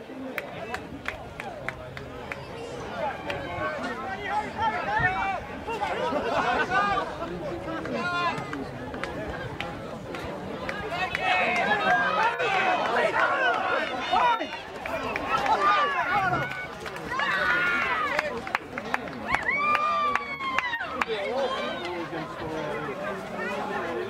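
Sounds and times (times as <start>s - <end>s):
voices shouting and calling out: 0.0s - 24.0s.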